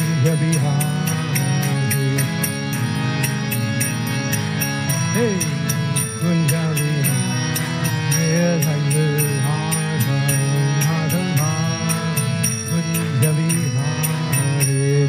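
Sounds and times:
man chanting: 0.0 - 3.4, 5.1 - 15.0
hand cymbals striking: 0.0 - 15.0
harmonium chords: 0.0 - 15.0.

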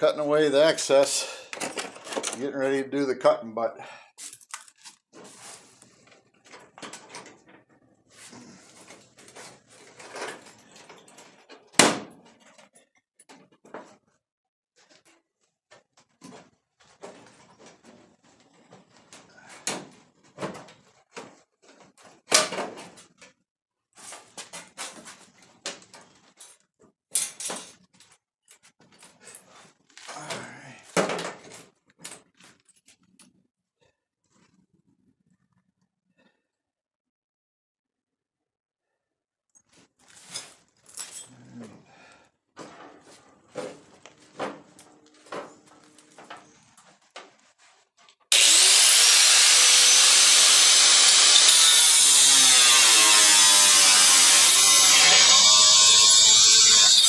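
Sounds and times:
sheet metal clanks and scrapes: 42.6 - 46.6.

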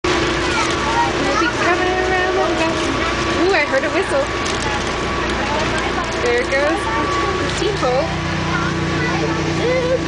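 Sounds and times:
chatter of voices: 0.1 - 10.0.

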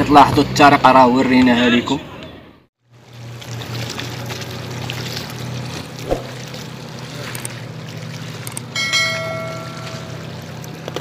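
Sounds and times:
bell-like ding: 8.8 - 10.2.

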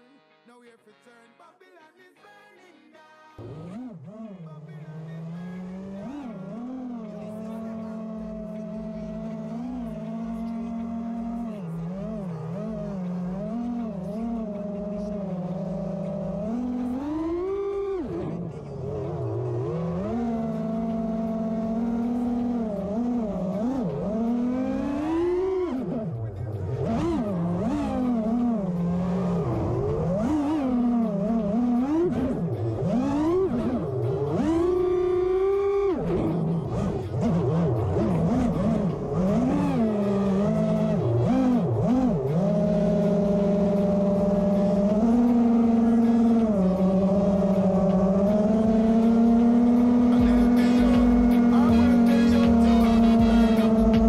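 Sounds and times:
drone motors and propellers whining: 3.4 - 54.0.

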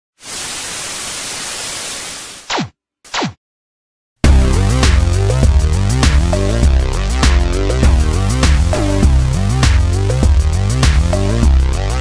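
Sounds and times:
television static hiss: 0.2 - 2.3.

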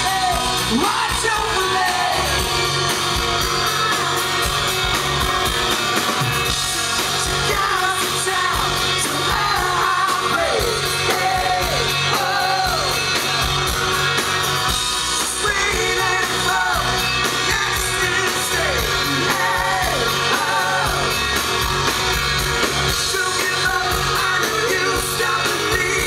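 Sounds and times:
sung lead vocal: 0.0 - 2.9, 6.5 - 21.9, 22.6 - 26.0
drums: 0.0 - 26.0
electric guitar: 0.0 - 26.0
keyboards: 0.0 - 26.0.

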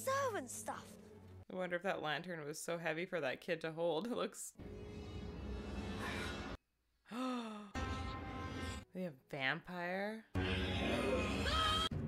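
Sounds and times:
low rumbling film soundtrack: 4.6 - 8.9
woman sighing: 7.0 - 7.8.

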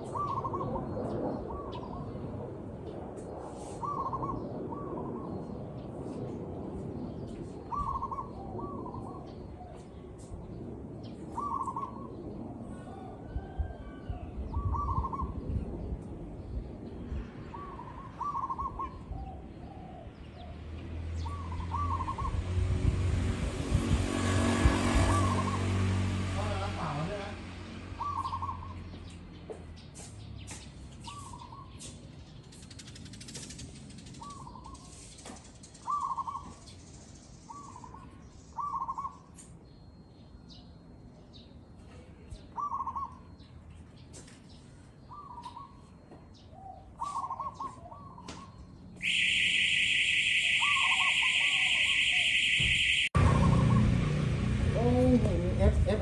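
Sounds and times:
dove cooing: 0.0 - 2.1, 3.8 - 5.3, 7.7 - 9.8, 11.3 - 13.9, 14.5 - 15.4, 17.5 - 20.2, 28.0 - 28.8, 42.6 - 43.3, 46.6 - 49.3, 50.1 - 54.2.

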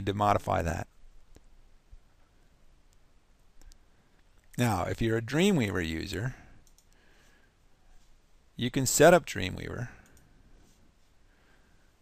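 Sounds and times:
computer mouse clicks: 3.6 - 4.6, 6.6 - 7.0, 10.0 - 10.3.

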